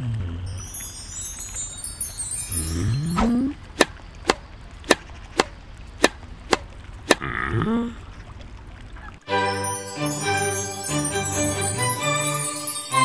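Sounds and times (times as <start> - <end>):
sparkling chime twinkle: 0.4 - 3.6, 9.3 - 13.0
racket hitting tennis ball: 3.1 - 7.3.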